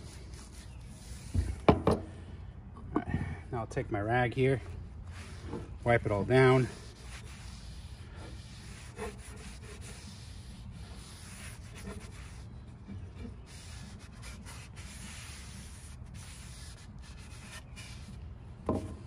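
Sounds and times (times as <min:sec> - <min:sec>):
cloth rubbing on wooden handle: 0:00.0 - 0:01.7, 0:05.1 - 0:18.2
small knocks: 0:18.6 - 0:19.0.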